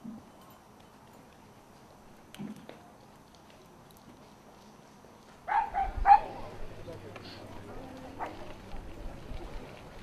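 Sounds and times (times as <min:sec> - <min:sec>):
dog barking: 0:05.5 - 0:06.3.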